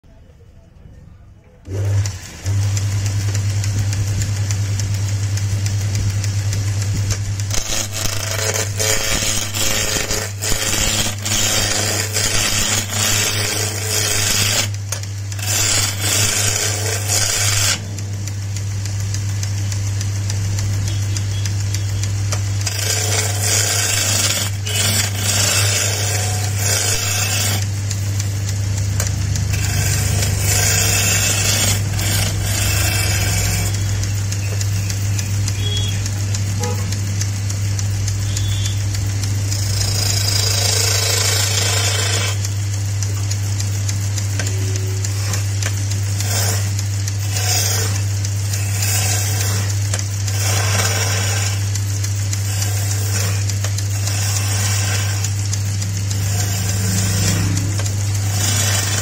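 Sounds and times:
lathe motor humming: 1.6s - 59.0s
gouge chattering on spinning wood: 2.6s - 59.0s.

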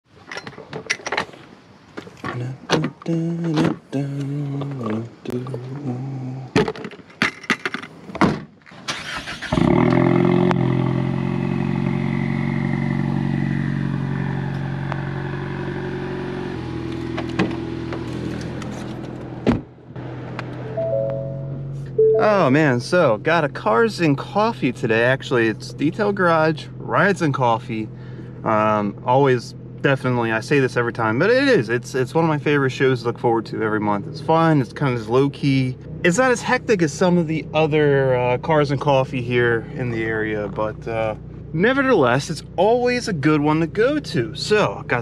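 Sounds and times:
car engine idling: 9.0s - 45.0s
intro music with a beat: 20.7s - 22.3s.

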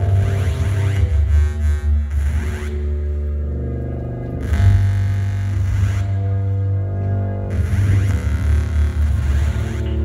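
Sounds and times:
heavy steady bass: 0.0s - 10.0s
live band music: 4.5s - 10.0s.

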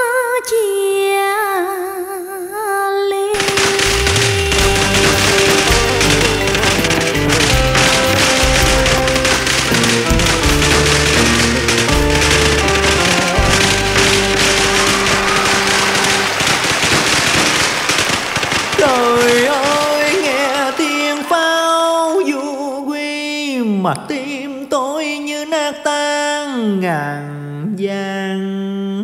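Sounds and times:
drum kit beat: 3.4s - 17.4s
keyboard melody: 3.5s - 17.0s
bass line: 3.8s - 16.4s.

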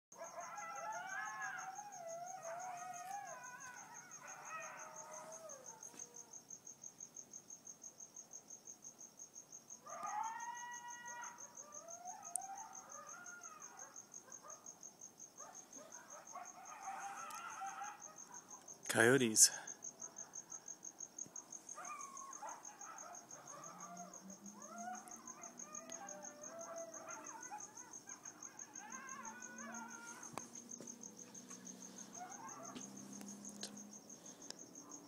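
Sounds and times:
coyotes howling and yipping: 0.2s - 7.5s, 9.6s - 35.0s.

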